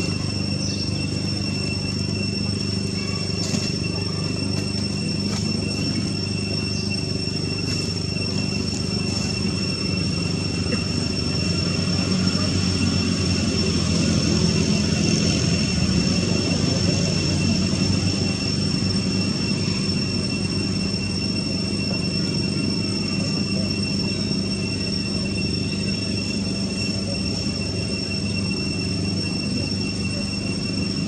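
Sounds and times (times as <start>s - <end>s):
motor humming: 0.0s - 31.0s
thin high-pitched whine: 0.0s - 31.0s.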